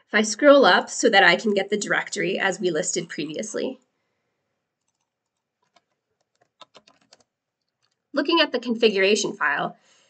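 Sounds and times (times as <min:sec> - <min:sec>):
keyboard typing: 0:04.8 - 0:08.0.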